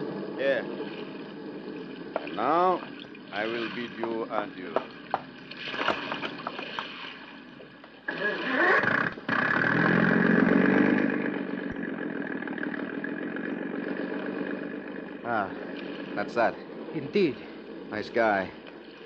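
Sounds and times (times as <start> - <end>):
motorboat engine starting and running: 0.0 - 19.0.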